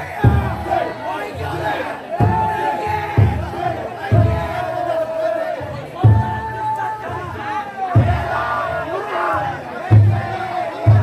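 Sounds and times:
crowd shouting and chanting: 0.0s - 11.0s
large drum beaten in steady strokes: 0.0s - 11.0s.

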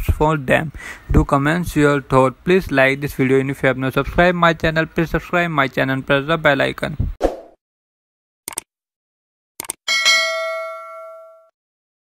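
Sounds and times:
bell ding: 9.9s - 11.5s.

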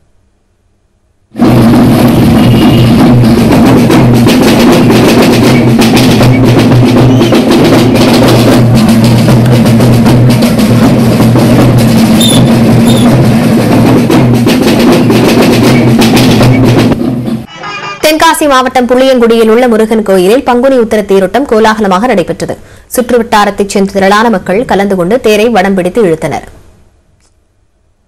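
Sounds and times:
loud drumming and percussion: 1.4s - 17.5s
high whistle-like tones: 7.0s - 7.5s, 12.2s - 13.1s.

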